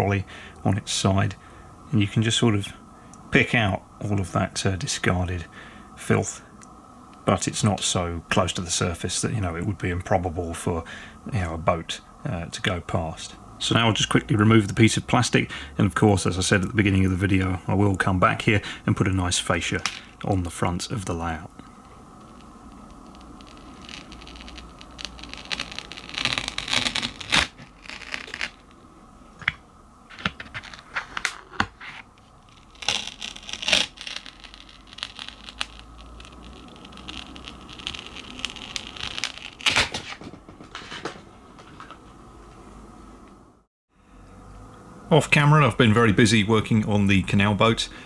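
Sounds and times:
plastic sheet peeling and crackling: 21.8s - 28.8s, 30.1s - 41.2s.

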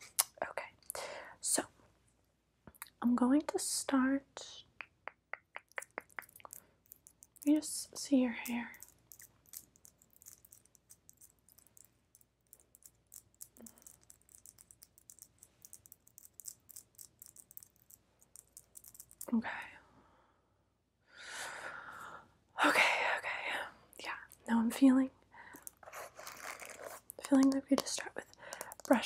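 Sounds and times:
fingertips scratching through hair: 25.6s - 29.0s.

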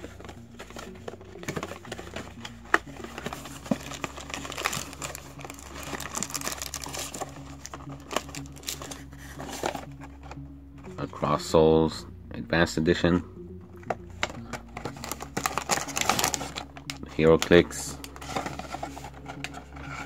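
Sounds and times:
cardboard packaging crinkling: 0.0s - 10.4s, 14.2s - 20.0s.

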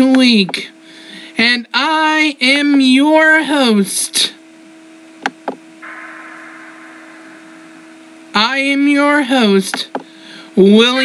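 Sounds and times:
steady hum: 0.0s - 11.0s
soft rush of noise: 5.8s - 9.5s.

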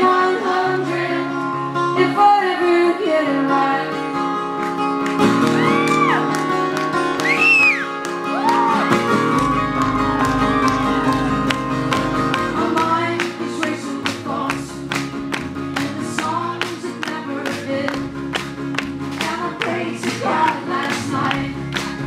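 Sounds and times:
strummed acoustic guitars: 0.0s - 22.0s
banjo: 8.8s - 22.0s.

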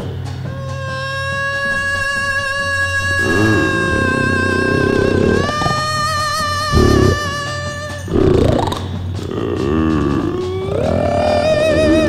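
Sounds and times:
rock band lead line bending: 0.0s - 12.0s.

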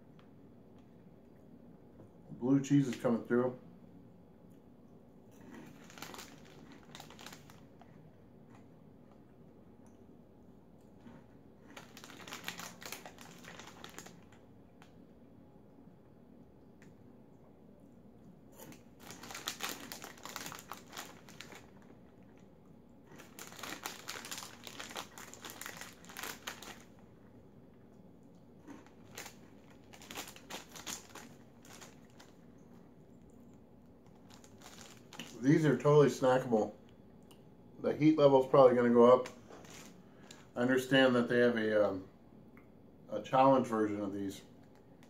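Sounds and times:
foil snack bag crinkling: 5.4s - 8.0s, 11.0s - 14.4s, 18.6s - 27.2s, 28.6s - 32.5s, 34.0s - 35.8s, 38.8s - 40.5s.

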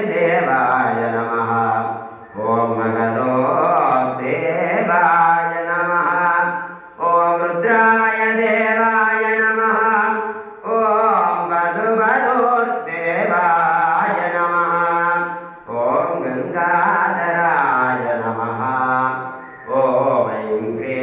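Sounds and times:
man chanting in long notes: 0.0s - 21.0s.

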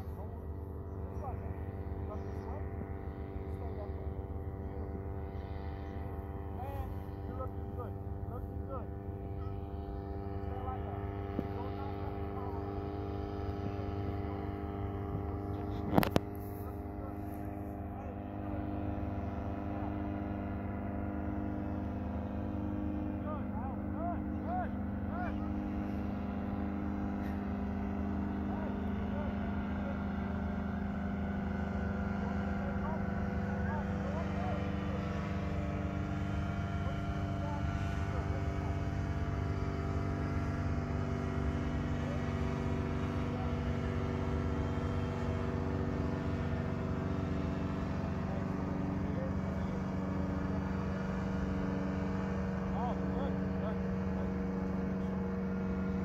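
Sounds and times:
paramotor engine droning overhead: 0.0s - 56.0s.

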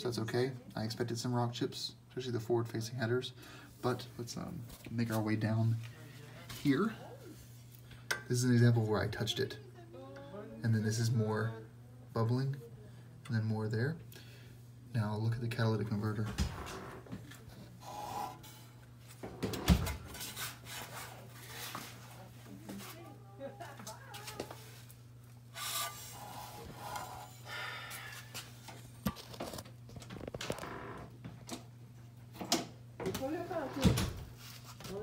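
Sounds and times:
steady low hum: 0.0s - 34.7s.

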